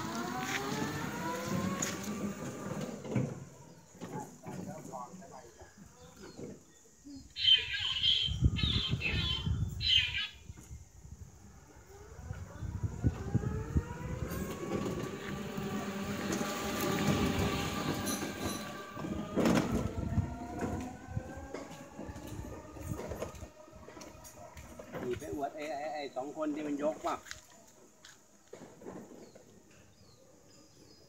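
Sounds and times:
electric motor whining: 0.0 - 3.1, 11.7 - 24.3.

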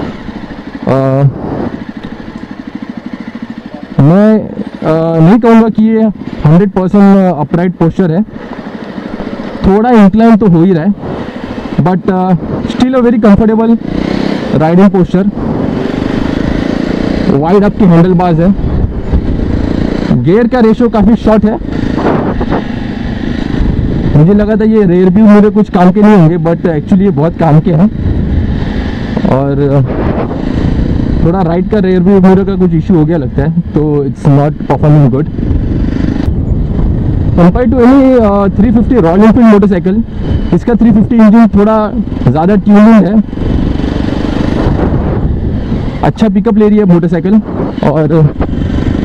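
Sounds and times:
motorcycle engine running: 0.0 - 49.0
wind and road noise rumble: 0.0 - 49.0
wind noise on microphone: 1.1 - 2.0, 12.2 - 12.8, 15.3 - 17.8, 18.4 - 20.1, 21.5 - 24.6, 27.8 - 31.4, 34.6 - 40.8, 42.1 - 46.1, 47.3 - 49.0.

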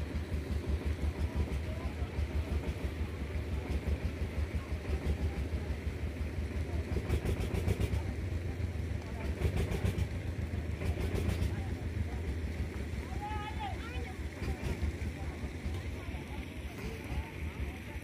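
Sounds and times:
boat engine rumble: 0.0 - 18.0
rapid rattling: 0.0 - 18.0.

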